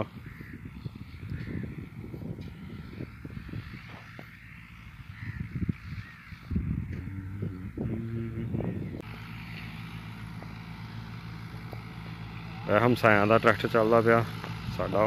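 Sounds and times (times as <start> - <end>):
tractor engine humming: 0.0 - 15.0.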